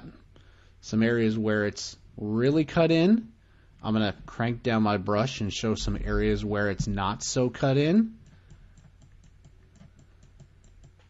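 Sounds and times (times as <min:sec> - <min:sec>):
low steady hum: 0:00.0 - 0:11.0
rapid computer clicking: 0:05.8 - 0:11.0.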